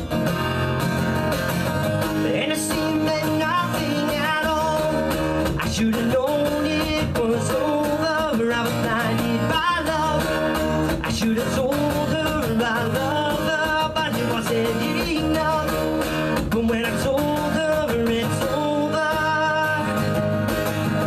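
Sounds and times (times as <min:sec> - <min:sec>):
acoustic guitar strumming: 0:00.0 - 0:21.0
man singing: 0:02.0 - 0:21.0.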